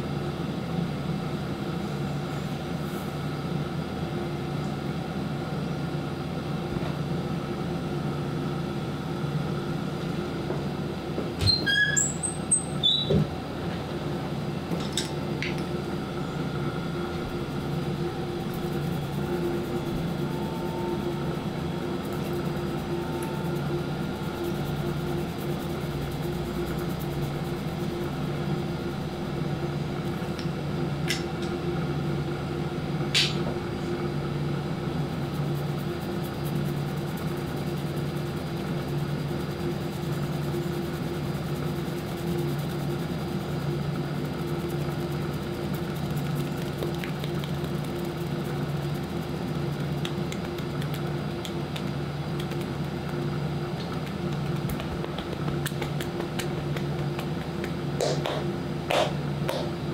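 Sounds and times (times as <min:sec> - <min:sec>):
low equipment hum: 0:00.0 - 0:59.9
fingertips rubbing damp hair: 0:16.4 - 0:30.2, 0:35.0 - 0:59.6.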